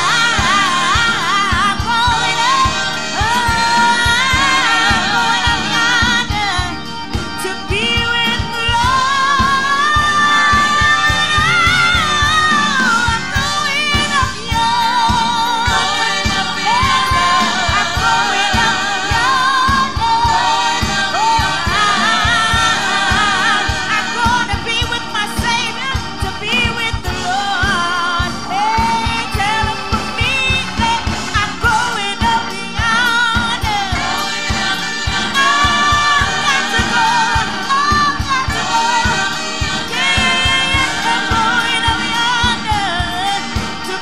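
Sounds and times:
steady drum beat: 0:00.0 - 0:44.0
women singing with vibrato: 0:00.0 - 0:44.0.

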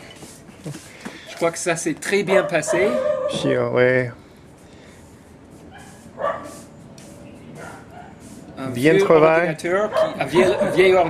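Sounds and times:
dog yipping: 0:02.3 - 0:03.5, 0:05.7 - 0:06.6, 0:07.6 - 0:08.2, 0:09.9 - 0:10.9.

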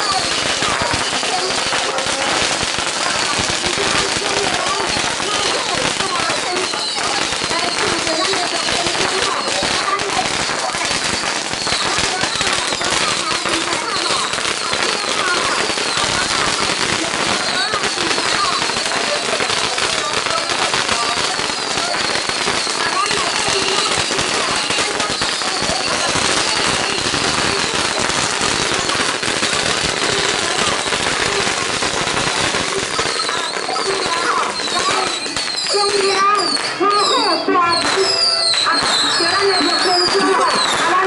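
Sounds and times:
firecrackers crackling: 0:00.0 - 0:41.0.

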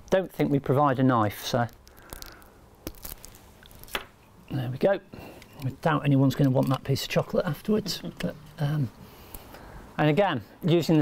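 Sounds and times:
chocolate snapping: 0:01.5 - 0:04.2.

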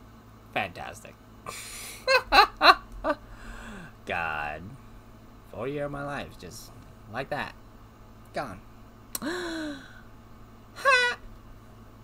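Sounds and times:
man's high-pitched wavering whine: 0:01.5 - 0:12.0.

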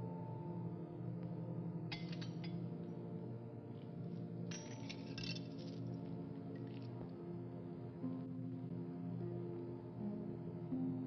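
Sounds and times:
low music underscore: 0:00.0 - 0:11.0.

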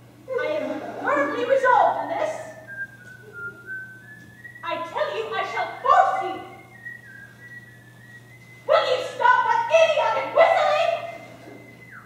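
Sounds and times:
person whistling: 0:02.5 - 0:04.9, 0:05.8 - 0:08.7, 0:11.2 - 0:12.0.

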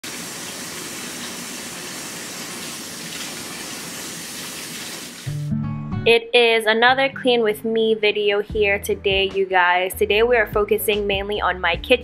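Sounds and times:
faucet running into sink: 0:00.0 - 0:05.3
music with low sustained notes: 0:05.3 - 0:06.2, 0:06.8 - 0:12.0.

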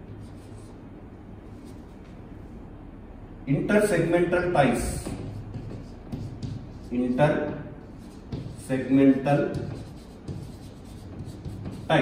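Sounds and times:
chalk scratching on blackboard: 0:00.1 - 0:00.8, 0:04.7 - 0:12.0.

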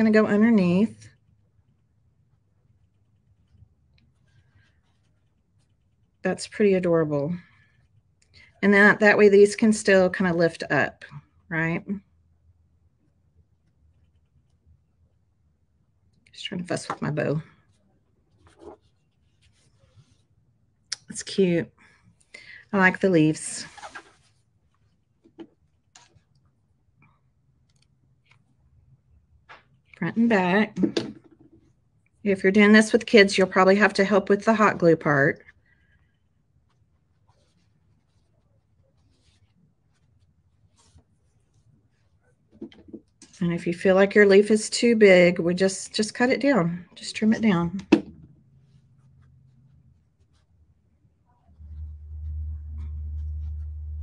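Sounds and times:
hands handling fabric: 0:17.7 - 0:21.4, 0:36.4 - 0:43.4, 0:47.8 - 0:54.0.

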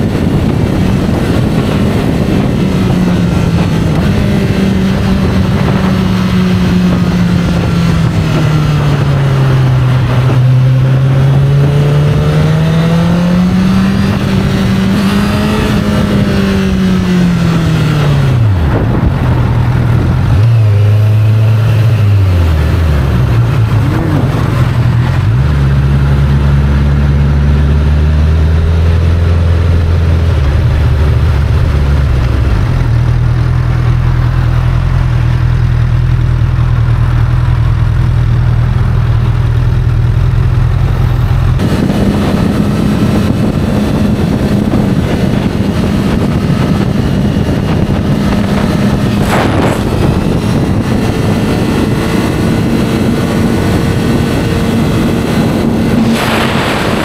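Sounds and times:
motorcycle engine revving: 0:00.0 - 0:57.0
wind and road noise: 0:00.0 - 0:57.0.

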